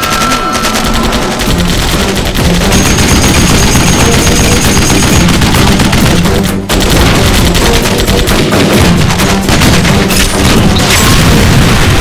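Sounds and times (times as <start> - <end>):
film score music: 0.0 - 12.0
machine-gun fire: 0.0 - 12.0.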